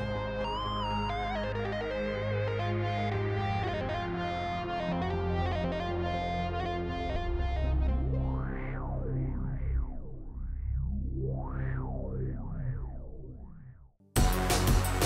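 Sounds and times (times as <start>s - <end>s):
synthesizer playing layered notes: 0.0s - 13.6s, 14.2s - 15.0s.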